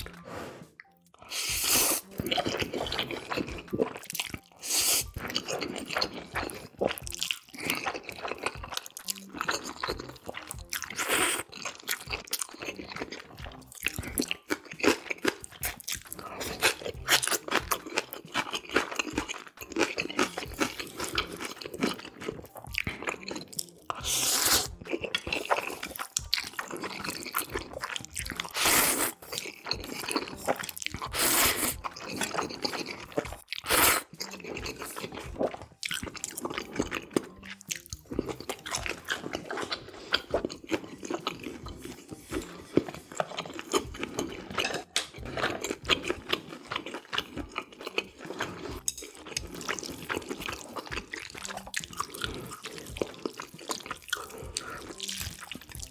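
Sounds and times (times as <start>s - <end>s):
wet chewing: 0.0s - 55.9s
noodle slurping: 23.9s - 26.0s, 28.3s - 37.2s.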